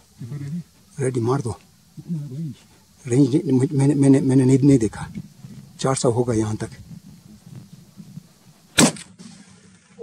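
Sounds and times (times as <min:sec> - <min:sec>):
rifle shot: 0:08.8 - 0:09.6.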